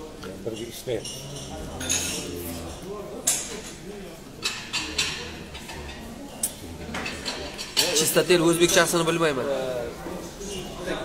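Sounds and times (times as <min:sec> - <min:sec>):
quiet indistinct voice: 0:04.8 - 0:07.8.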